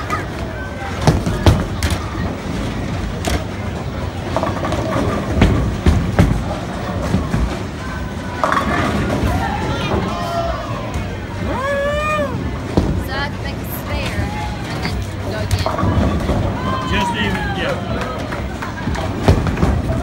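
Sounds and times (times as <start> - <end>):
bowling balls rolling: 0.0 - 20.0.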